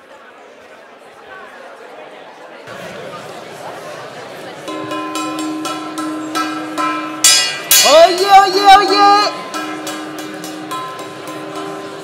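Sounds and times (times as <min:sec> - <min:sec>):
small gong ringing: 0:04.7 - 0:12.0.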